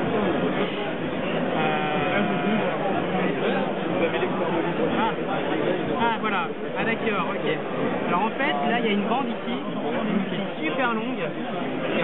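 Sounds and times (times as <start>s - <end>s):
murmur of voices: 0.0s - 12.0s.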